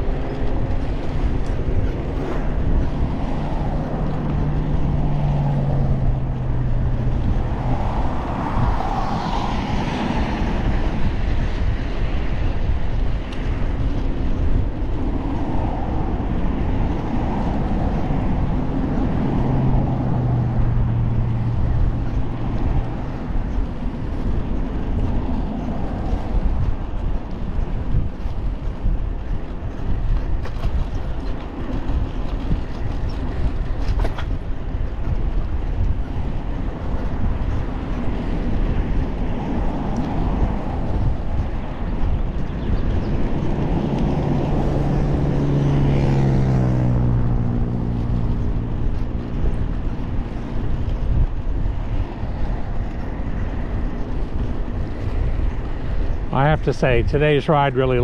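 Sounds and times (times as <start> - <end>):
highway traffic rumble: 0.0 - 58.0
passing vehicle engine: 2.0 - 11.8, 15.4 - 26.7, 37.5 - 58.0.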